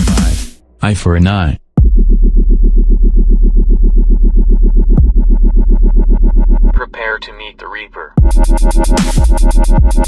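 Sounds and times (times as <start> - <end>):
deep sub-bass: 0.0 - 7.0.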